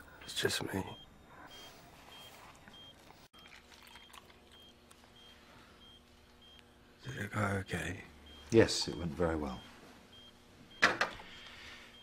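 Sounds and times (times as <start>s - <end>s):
patient monitor beeping: 0.0s - 12.0s.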